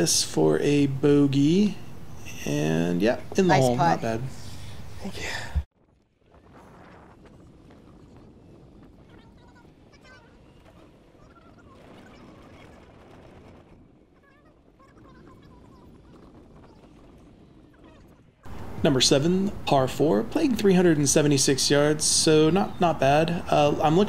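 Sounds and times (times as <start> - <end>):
bird calls chirping: 22.2 - 24.0.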